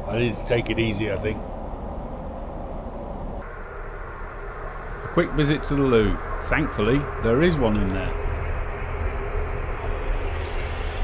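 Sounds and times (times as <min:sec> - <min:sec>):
airliner cabin rumble: 0:00.0 - 0:11.0
high hiss: 0:03.4 - 0:11.0.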